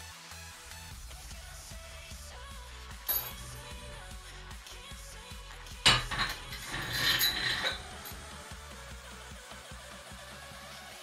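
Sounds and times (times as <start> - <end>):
weight plate clanking on barbell: 5.9 - 8.2.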